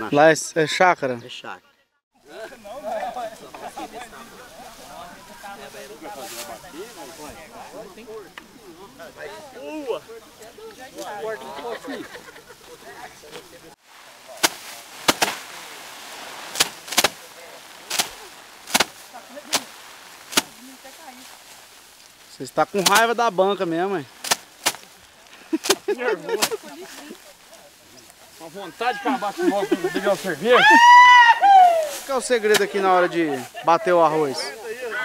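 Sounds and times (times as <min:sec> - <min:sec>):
rice stalks beaten on wood: 0:13.3 - 0:34.4.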